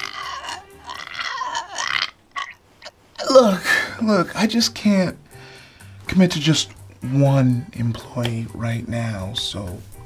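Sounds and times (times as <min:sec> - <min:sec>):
man whimpering: 0:03.2 - 0:04.0.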